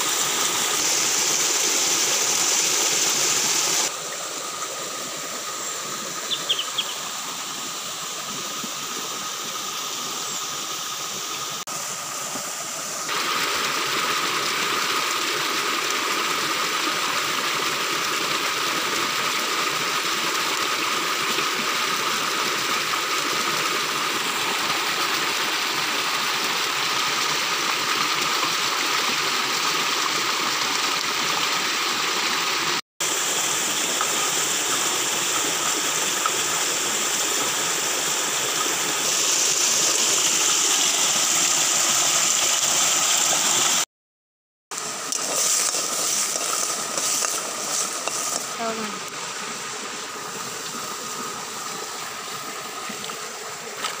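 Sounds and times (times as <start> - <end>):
stream rushing: 0.0 - 43.9, 44.7 - 54.0.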